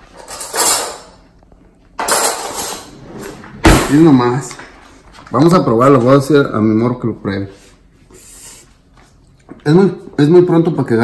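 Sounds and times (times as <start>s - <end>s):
metal cutlery rattling: 0.1s - 1.2s, 2.0s - 3.0s
drawer sliding: 2.5s - 4.6s
drawer knocking shut: 3.0s - 4.4s.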